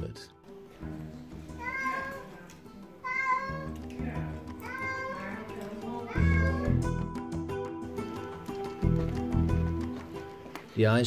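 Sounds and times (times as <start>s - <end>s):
background music: 0.0s - 11.0s
cat meowing: 1.6s - 2.4s, 3.0s - 3.8s, 4.6s - 6.9s.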